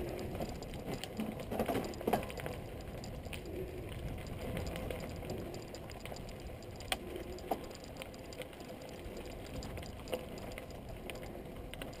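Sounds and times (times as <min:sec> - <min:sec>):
bike tyres and frame rattling: 0:00.0 - 0:12.0.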